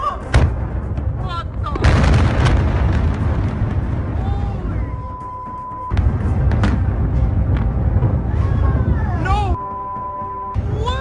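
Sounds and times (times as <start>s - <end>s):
explosion blasts: 0.3s - 5.2s, 5.9s - 9.2s
deep rumble: 0.4s - 9.6s.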